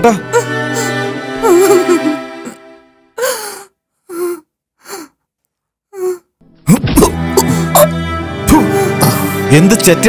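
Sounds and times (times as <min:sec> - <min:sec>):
film background music: 0:00.0 - 0:03.6, 0:06.4 - 0:10.0.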